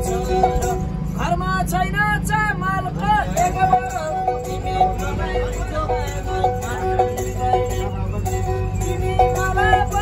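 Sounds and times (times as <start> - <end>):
bowed string instrument: 0.0 - 10.0
bus engine rumble: 0.0 - 10.0
man singing folk song: 0.0 - 10.0.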